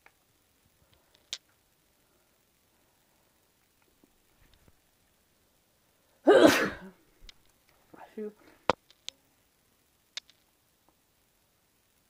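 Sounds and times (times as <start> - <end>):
person sneezing: 6.2 - 7.0.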